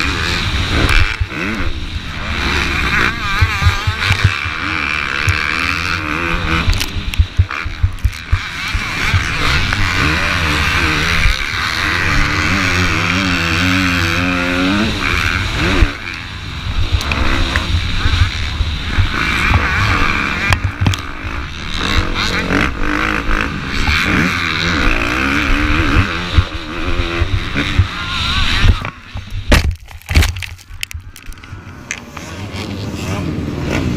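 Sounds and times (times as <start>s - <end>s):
heavy rushing noise: 0.0s - 12.9s
motocross bike engine revving: 0.0s - 33.9s.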